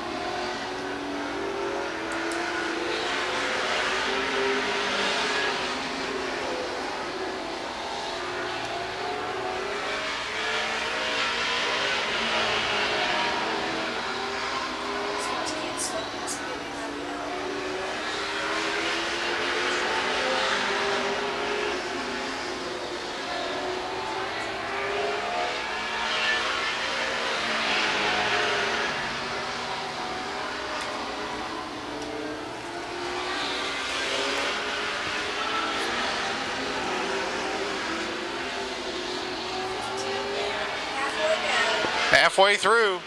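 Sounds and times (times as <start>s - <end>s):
stock car engines racing: 0.0s - 43.0s.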